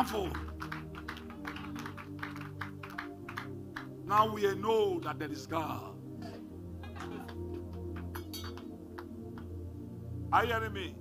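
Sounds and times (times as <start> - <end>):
light clapping: 0.0 - 4.0, 7.0 - 9.6
soft music with held chords: 0.0 - 11.0.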